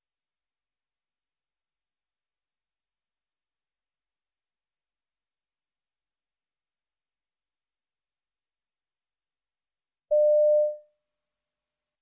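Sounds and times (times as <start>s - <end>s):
electronic beep: 10.1s - 10.8s.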